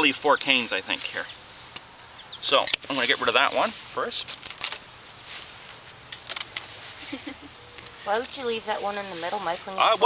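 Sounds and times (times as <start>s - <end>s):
pruners snipping: 7.4s - 8.5s.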